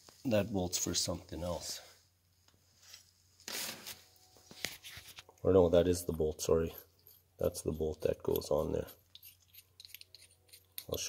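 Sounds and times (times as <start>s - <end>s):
scraping rustle of handling: 2.6s - 5.4s.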